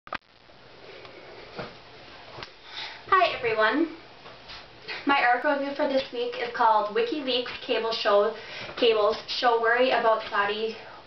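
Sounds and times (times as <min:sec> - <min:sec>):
soft footstep: 0:01.4 - 0:02.6.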